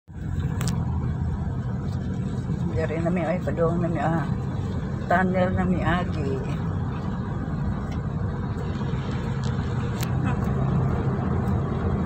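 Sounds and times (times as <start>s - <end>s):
car road and engine rumble: 0.1s - 12.0s.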